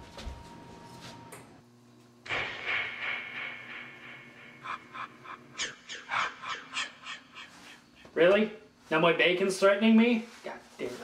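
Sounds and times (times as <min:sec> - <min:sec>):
person laughing breathily: 0:04.6 - 0:08.1.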